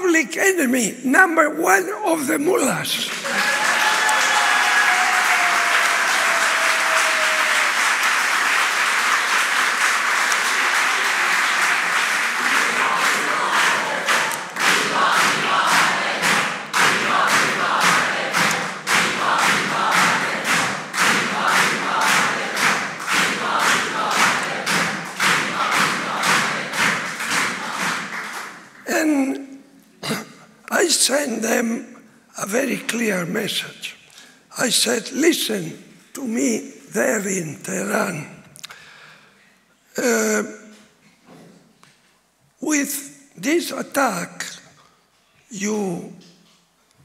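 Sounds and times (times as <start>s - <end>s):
audience applauding: 2.9s - 29.1s
rhythmic clapping in unison: 2.9s - 29.4s.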